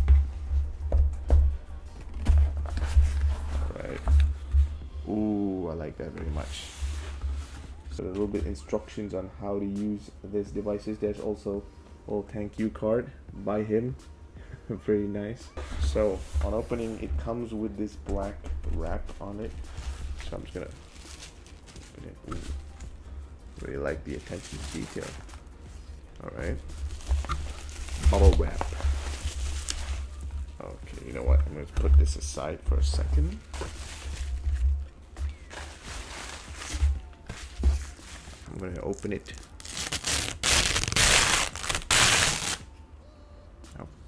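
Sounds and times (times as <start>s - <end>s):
wrapping sheet rustling: 18.2s - 23.0s, 23.6s - 42.7s.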